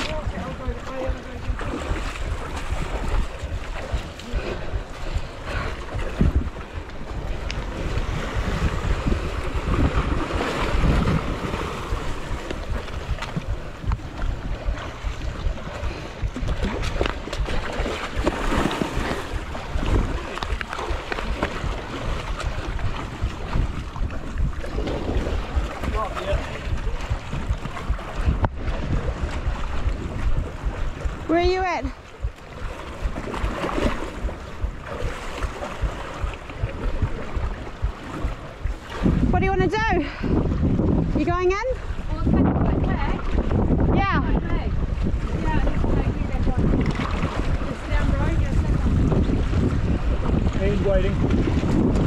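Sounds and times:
water lapping against rocks: 0.0s - 52.0s
wind buffeting microphone: 0.0s - 52.0s.

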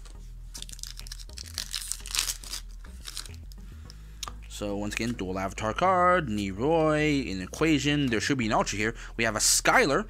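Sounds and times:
foil wrapper tearing and crinkling: 0.6s - 3.6s.

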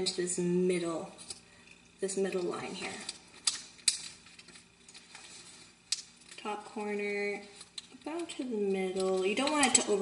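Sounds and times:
paper crinkling: 2.3s - 10.0s.

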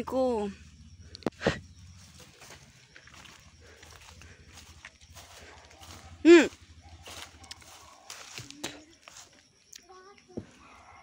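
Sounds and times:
low steady rumble: 0.0s - 8.1s
footsteps in dry leaves: 2.0s - 9.4s.

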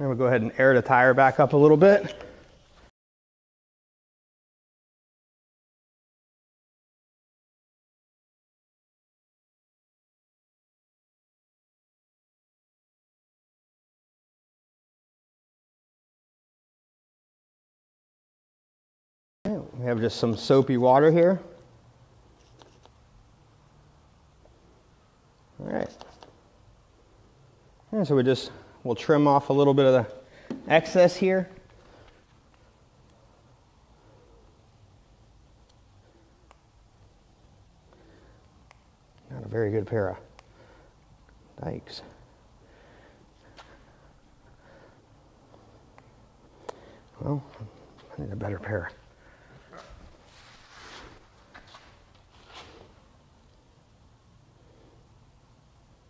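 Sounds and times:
rustling and handling noise: 49.4s - 53.7s.

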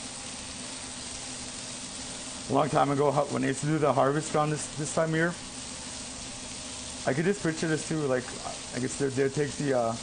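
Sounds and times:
corn sizzling in frying pan: 0.0s - 10.0s.

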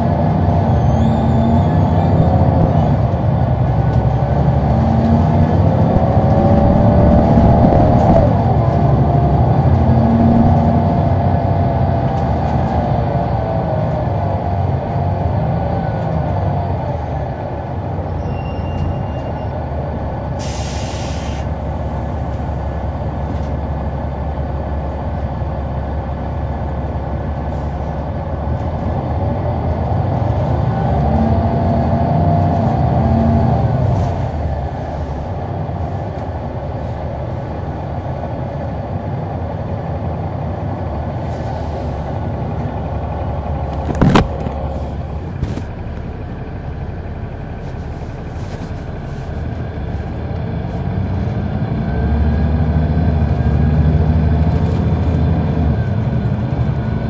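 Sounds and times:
bus diesel engine rumbling: 0.0s - 57.0s
air hiss: 20.4s - 21.5s.

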